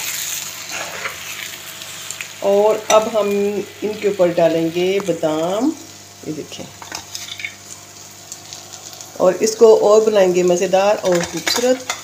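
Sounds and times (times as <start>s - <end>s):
soft sizzle of food cooking: 0.0s - 12.0s
metal spoon scraping a pan: 0.1s - 1.4s.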